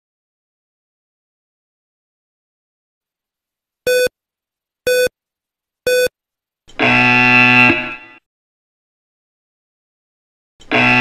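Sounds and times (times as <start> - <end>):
short electronic beeps: 3.9 - 4.1, 4.9 - 5.1, 5.9 - 6.1.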